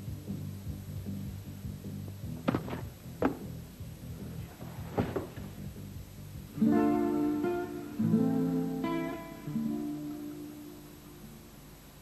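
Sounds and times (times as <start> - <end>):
acoustic guitar strummed chords: 6.4 - 11.5.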